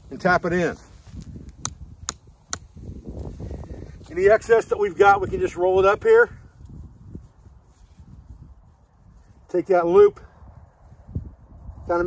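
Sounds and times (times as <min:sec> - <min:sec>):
soft rustling: 0:00.0 - 0:01.6, 0:06.4 - 0:09.5
hatchet tapping tent stake: 0:01.5 - 0:02.8.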